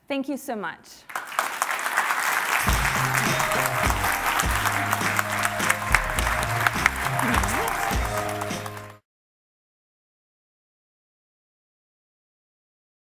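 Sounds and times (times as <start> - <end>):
audience applauding: 1.1 - 9.0
instrumental music with bass: 2.7 - 9.0.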